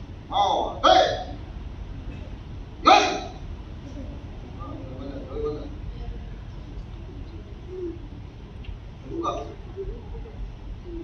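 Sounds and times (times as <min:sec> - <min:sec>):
sharp karate shouts: 0:00.4 - 0:01.3, 0:02.8 - 0:03.4.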